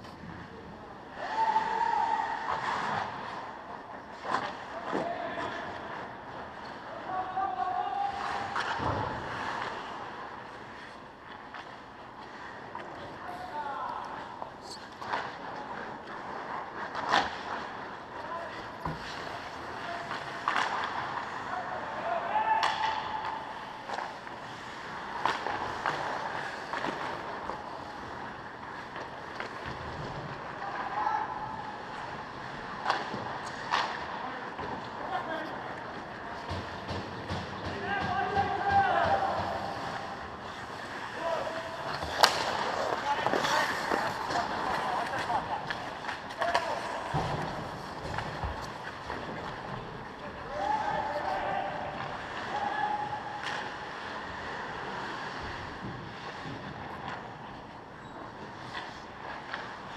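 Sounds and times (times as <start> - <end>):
cracks of sticks and pucks: 8.1 - 13.2, 14.0 - 21.5, 22.4 - 54.6
skate blades scraping ice: 39.2 - 52.3.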